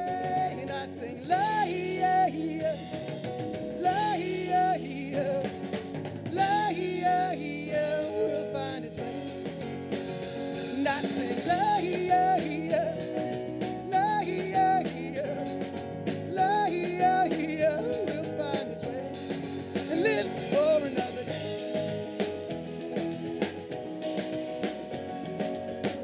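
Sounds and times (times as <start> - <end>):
man singing: 0.0 - 9.8, 10.5 - 22.2
rock band playing: 0.0 - 26.0.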